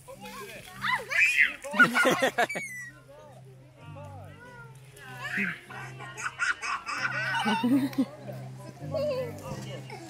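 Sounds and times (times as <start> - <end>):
children squealing and shouting: 0.8 - 3.1, 5.2 - 7.7.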